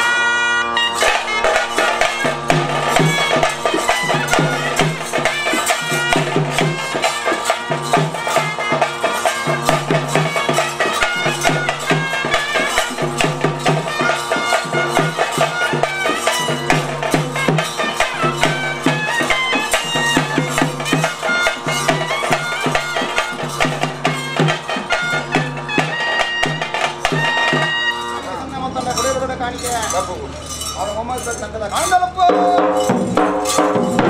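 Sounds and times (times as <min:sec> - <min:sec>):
drums keeping steady beat: 0:00.0 - 0:34.0
reedy pipe melody: 0:00.0 - 0:34.0.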